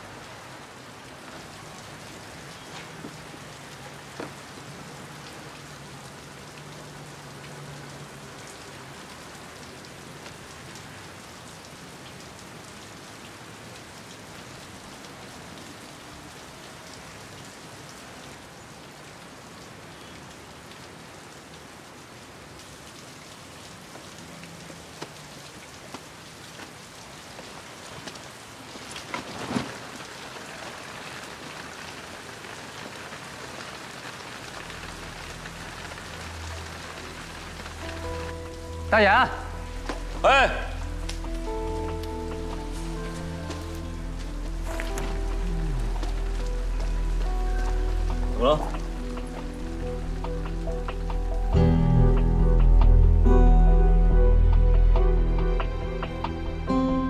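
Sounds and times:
steady rain falling: 0.0s - 56.8s.

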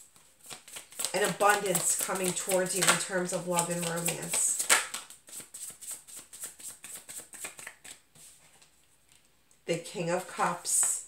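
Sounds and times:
cards being shuffled: 0.1s - 9.3s.

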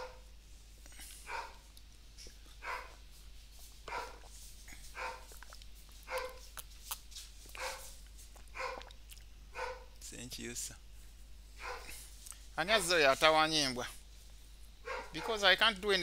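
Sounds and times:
dog barking: 0.0s - 0.2s, 1.2s - 1.6s, 2.6s - 3.0s, 3.9s - 4.2s, 4.9s - 5.4s, 6.1s - 6.4s, 7.5s - 7.9s, 8.5s - 8.9s, 9.5s - 10.0s, 11.6s - 12.0s, 14.8s - 15.4s.

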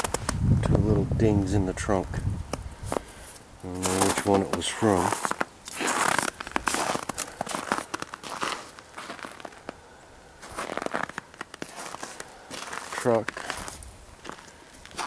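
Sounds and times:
footsteps crunching in icy snow: 2.5s - 15.0s.

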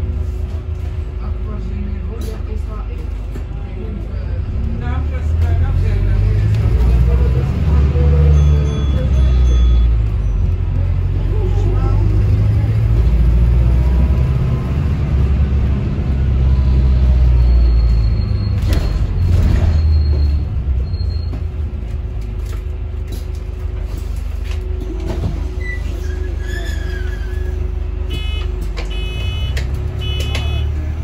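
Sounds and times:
bus engine rumble: 0.0s - 31.0s
road noise: 0.0s - 31.0s.

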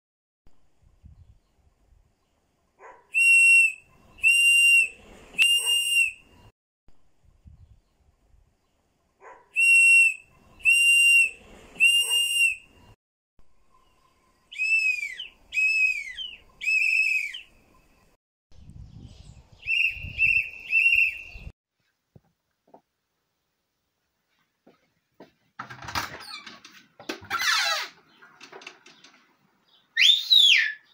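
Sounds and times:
shrill whistle blasts: 3.2s - 6.5s, 9.6s - 12.7s, 14.5s - 17.5s, 19.6s - 21.5s, 30.0s - 30.9s.

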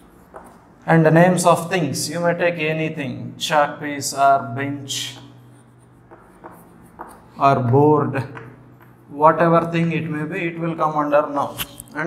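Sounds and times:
chalk scratching on chalkboard: 0.0s - 0.7s, 4.9s - 7.4s.

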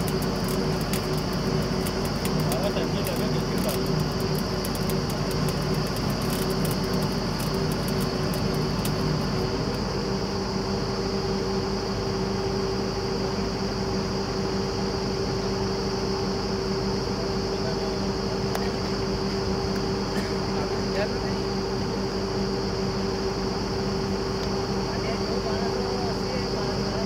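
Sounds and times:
faint fast ticking: 0.0s - 9.8s
drilling rig drone: 0.0s - 27.0s.

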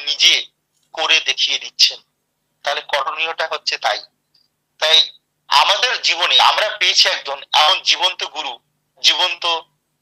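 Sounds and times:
man speaking: 0.0s - 4.1s, 4.8s - 9.7s.

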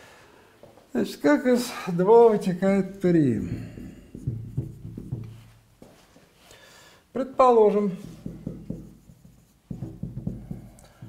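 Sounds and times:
marker writing on whiteboard: 3.8s - 5.4s, 8.0s - 11.0s.

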